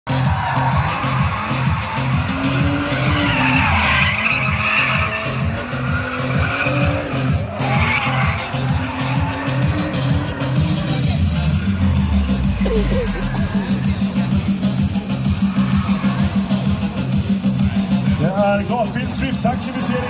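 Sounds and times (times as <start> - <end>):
music with steady beat: 0.1 - 18.4
car engine revving: 0.6 - 18.3.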